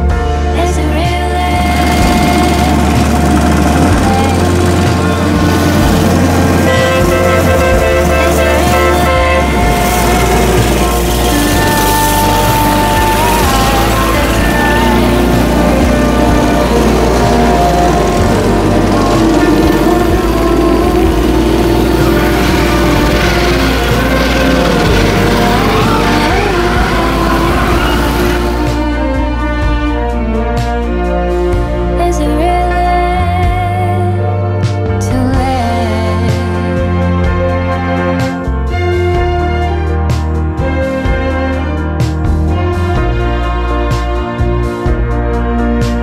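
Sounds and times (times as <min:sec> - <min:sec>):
background music: 0:00.0 - 0:46.0
small engines puttering past: 0:00.6 - 0:34.2.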